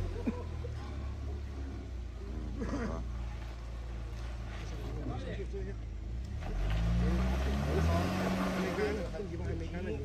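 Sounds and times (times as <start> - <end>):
suv engine revving: 6.0 - 9.8.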